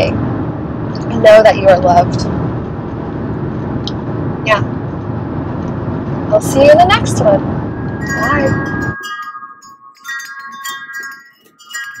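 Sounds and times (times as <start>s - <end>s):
metal chimes ringing: 7.6s - 12.0s.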